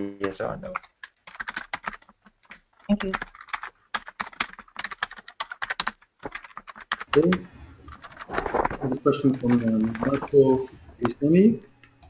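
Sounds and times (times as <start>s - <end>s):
computer keyboard typing: 0.2s - 11.3s.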